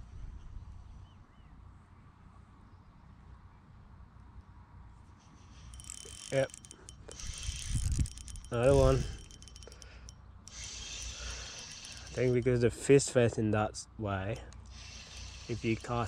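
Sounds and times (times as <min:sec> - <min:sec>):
faint wind rumble on microphone: 0:00.0 - 0:01.6, 0:07.2 - 0:09.2
fishing reel clicking: 0:05.5 - 0:13.1, 0:14.5 - 0:16.0.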